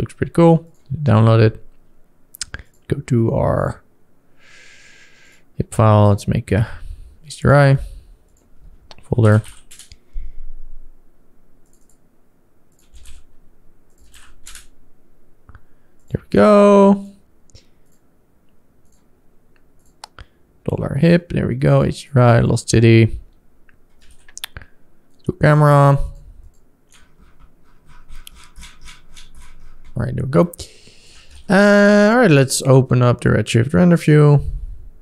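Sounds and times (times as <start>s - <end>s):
mouse and keyboard clicks: 11.6s - 12.0s, 12.7s - 13.3s.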